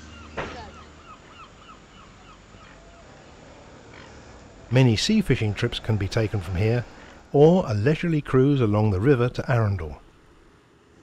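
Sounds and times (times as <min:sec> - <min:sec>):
gulls calling: 0:00.0 - 0:10.1
low background hiss: 0:00.0 - 0:11.0.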